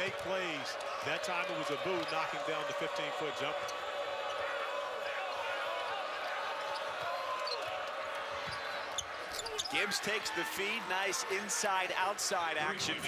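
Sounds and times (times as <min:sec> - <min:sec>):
murmur of arena crowd: 0:00.0 - 0:13.0.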